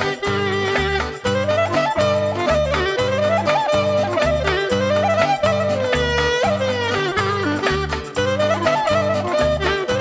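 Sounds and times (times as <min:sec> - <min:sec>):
bass and rhythm accompaniment: 0:00.0 - 0:10.0
clarinet playing sliding melody: 0:00.0 - 0:10.0.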